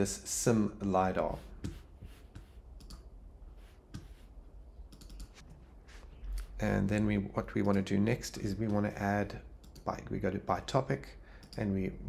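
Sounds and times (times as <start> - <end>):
computer mouse or key clicks: 2.4 - 3.1, 4.9 - 5.4.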